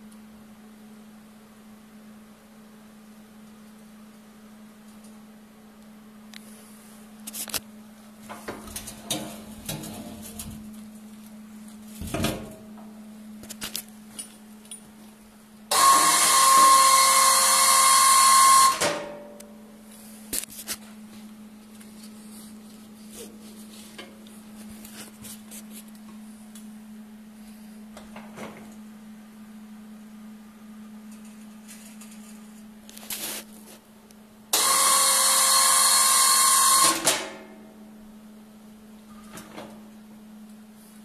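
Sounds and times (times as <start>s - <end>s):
hydraulic pump motor whining: 15.7s - 19.0s, 34.5s - 37.1s.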